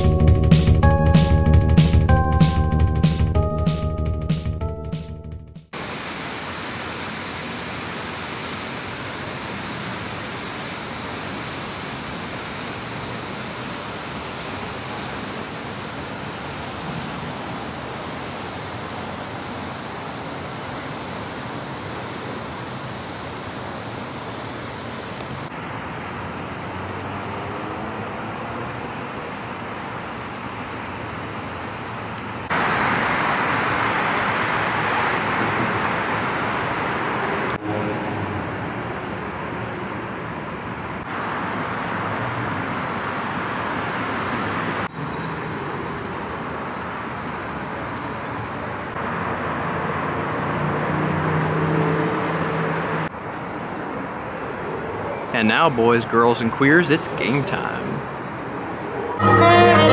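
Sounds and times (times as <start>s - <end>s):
rushing city ambience: 0.0s - 59.9s
distant traffic: 5.8s - 59.9s.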